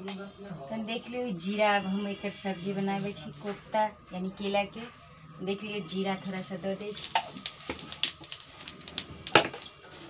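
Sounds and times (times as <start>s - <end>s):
seeds crackling in hot oil: 6.2s - 10.0s.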